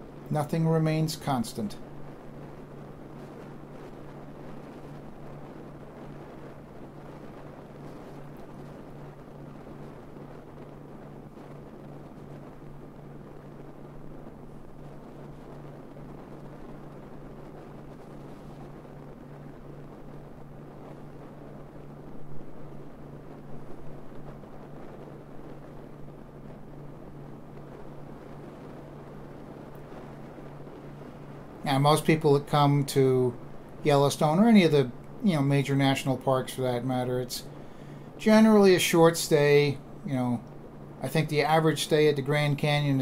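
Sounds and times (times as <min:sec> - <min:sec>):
wind rushing over microphone: 0:00.0 - 0:43.0.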